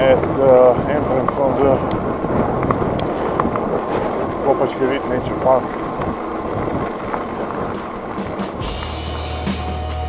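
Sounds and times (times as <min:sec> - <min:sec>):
bike riding on gravel: 0:00.0 - 0:10.0
wind on microphone: 0:00.0 - 0:10.0
electronic music with deep bass: 0:08.4 - 0:10.0.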